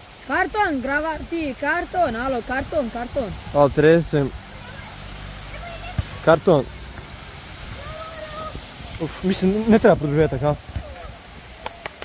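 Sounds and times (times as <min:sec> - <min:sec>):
outdoor hiss: 0:00.0 - 0:12.0.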